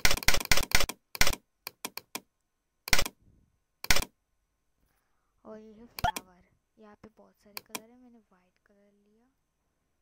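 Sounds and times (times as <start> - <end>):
sharp clicking sound effects: 2.9 - 3.2, 3.8 - 4.1, 6.0 - 6.3, 7.5 - 7.9.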